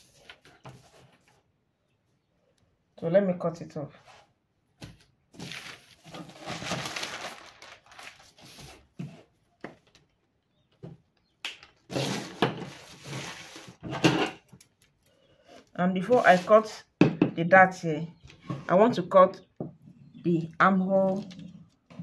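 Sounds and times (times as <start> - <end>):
paper rustling and crackling: 0.0 - 1.4, 5.0 - 10.2, 11.6 - 13.8.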